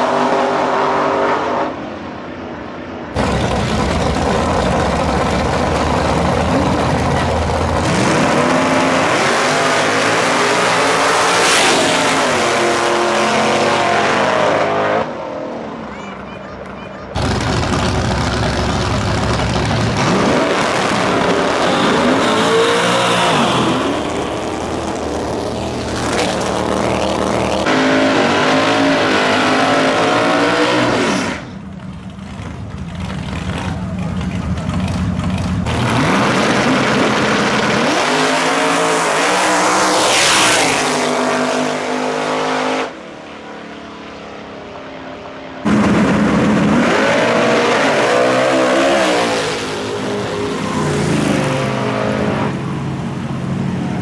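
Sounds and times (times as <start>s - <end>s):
drag racing cars launching: 3.1s - 43.6s, 45.5s - 54.0s.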